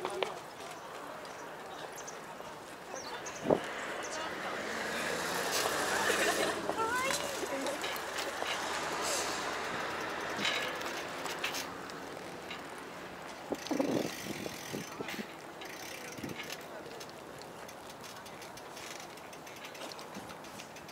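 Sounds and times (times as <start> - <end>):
bicycle tyres on asphalt: 0.0 - 20.9
wind: 0.0 - 20.9
small clicks and rattles: 5.5 - 20.9.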